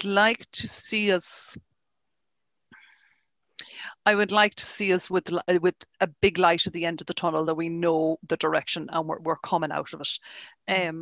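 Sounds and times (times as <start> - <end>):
woman breathing softly: 2.7 - 4.0, 10.2 - 10.6.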